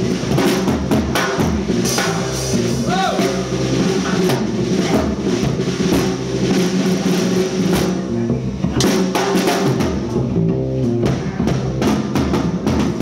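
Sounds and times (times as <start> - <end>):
bass: 0.0 - 13.0
drum kit steady beat: 0.0 - 13.0.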